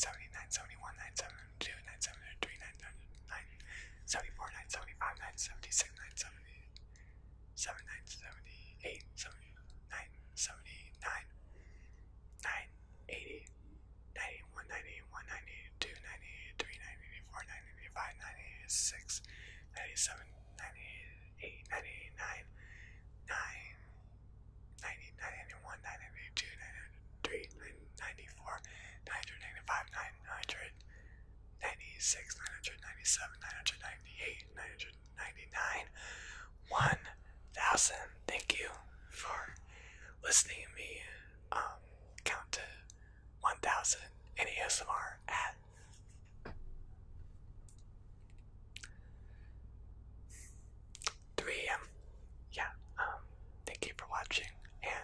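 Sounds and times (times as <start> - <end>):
man whispering: 0.0 - 45.9, 50.3 - 55.0
faint low hum: 0.0 - 55.0.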